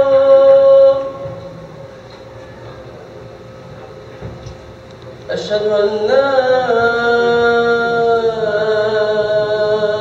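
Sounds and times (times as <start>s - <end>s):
man chanting a held note: 0.0s - 3.0s.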